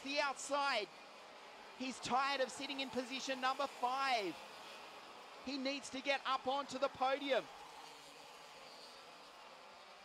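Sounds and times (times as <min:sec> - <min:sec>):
kart engines buzzing: 0:00.0 - 0:10.0.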